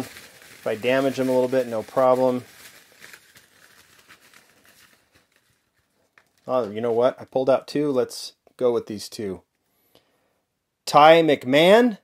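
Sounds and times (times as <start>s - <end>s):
plastic bag crinkling: 0.0s - 7.6s
paper slips rustling: 0.0s - 8.0s.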